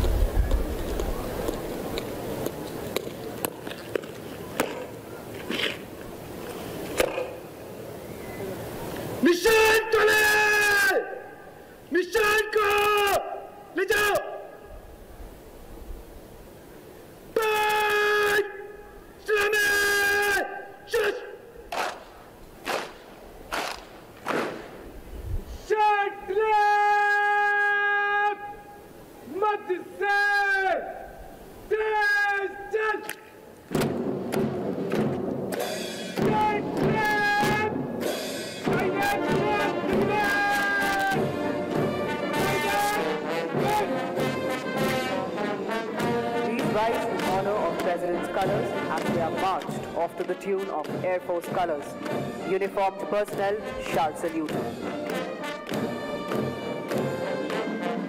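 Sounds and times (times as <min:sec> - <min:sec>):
bugle call: 0:17.4 - 0:21.9, 0:38.6 - 0:50.8
brass band playing a march: 0:21.0 - 0:24.8, 0:33.8 - 0:58.0.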